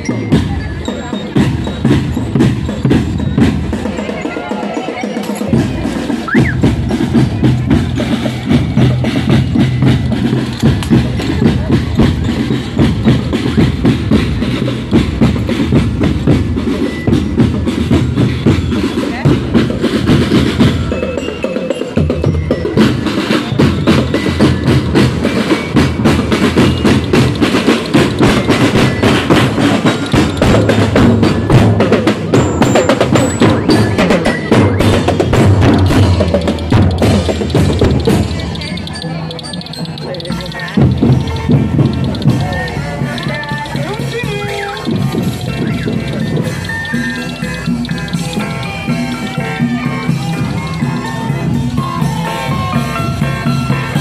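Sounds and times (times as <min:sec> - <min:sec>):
snare drums: 0:00.0 - 0:54.0
bass drums: 0:05.1 - 0:21.2, 0:22.0 - 0:54.0.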